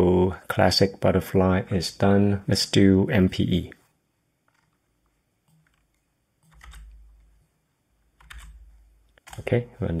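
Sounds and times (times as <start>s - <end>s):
computer keyboard typing: 4.5s - 7.5s, 8.1s - 9.6s.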